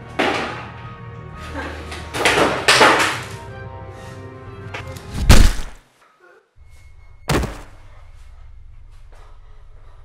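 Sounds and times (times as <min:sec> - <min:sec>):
background music: 0:00.0 - 0:05.7.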